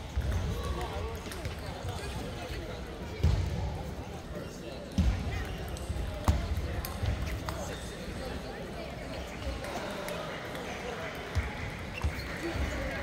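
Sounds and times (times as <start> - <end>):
chatter in a busy hall: 0.0 - 13.0.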